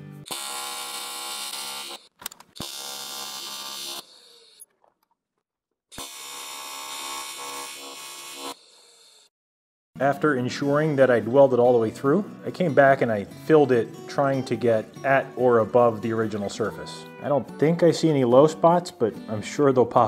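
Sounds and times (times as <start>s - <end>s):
welding arc buzzing: 0.2s - 4.7s, 5.9s - 9.3s.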